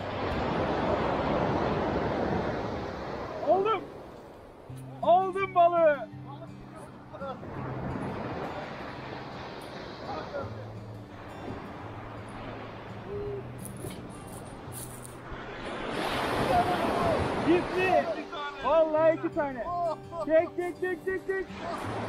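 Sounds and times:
soft background music: 0:00.0 - 0:22.0
surf on a pebble beach: 0:00.0 - 0:22.0.

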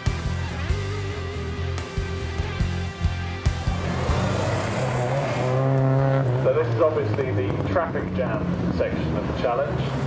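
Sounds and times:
rock music with guitar and drums: 0:00.0 - 0:06.4
race car engines: 0:00.0 - 0:10.0.

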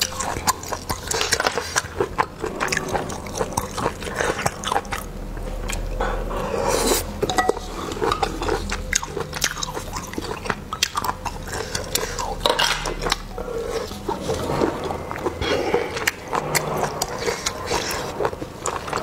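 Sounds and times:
sucking and chewing: 0:00.0 - 0:19.0.

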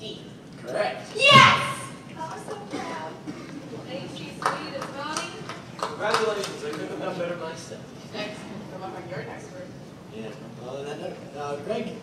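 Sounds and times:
teenagers shouting: 0:01.1 - 0:02.0.

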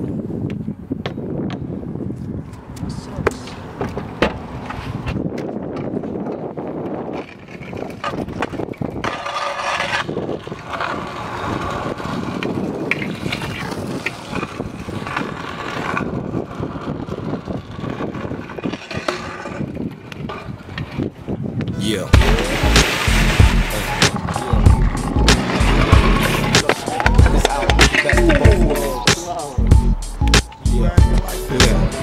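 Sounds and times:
small hard wheels rolling on concrete: 0:03.7 - 0:28.8
scraping grinds along ledge: 0:06.9 - 0:21.2, 0:22.2 - 0:29.2.

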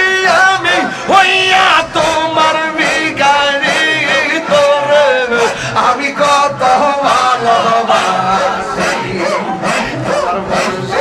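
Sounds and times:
man singing a chant: 0:00.0 - 0:11.0.

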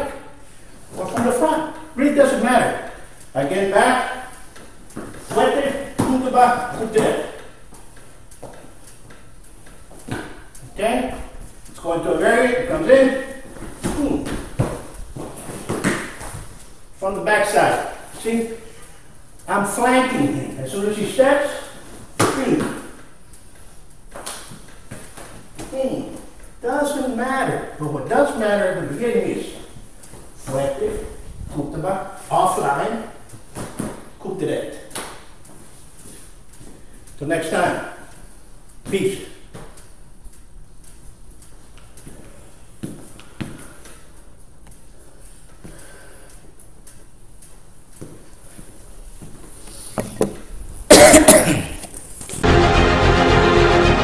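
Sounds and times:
man coughing: 0:50.9 - 0:51.9.

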